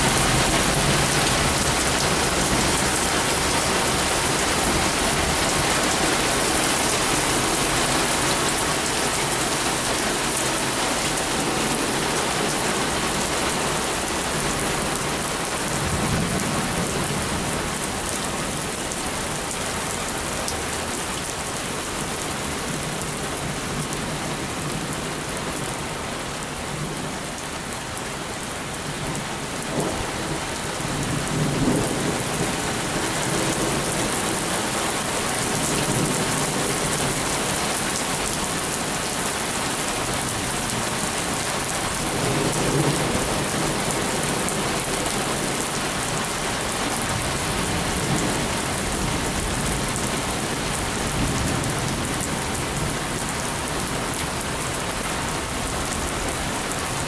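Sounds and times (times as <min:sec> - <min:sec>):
heavy rain pouring: 0:00.0 - 0:57.0.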